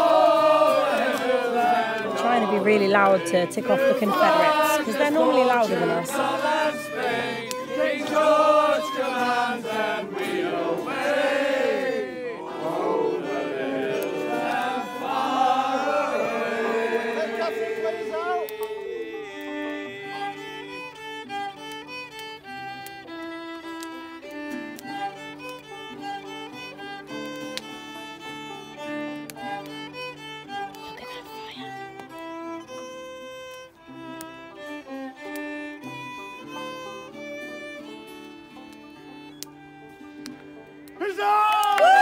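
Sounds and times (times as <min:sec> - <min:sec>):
group singing: 0:00.0 - 0:20.4
fiddle playing a tune: 0:00.0 - 0:42.0.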